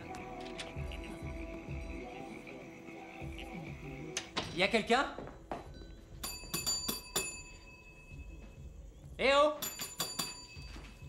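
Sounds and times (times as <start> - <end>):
service bell ringing: 5.7 - 8.6, 9.6 - 11.0.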